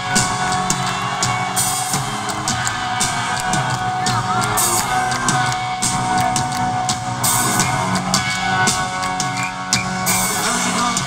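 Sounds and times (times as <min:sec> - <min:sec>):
audience whooping and yelling: 0:00.0 - 0:11.0
live rock band: 0:00.0 - 0:11.0.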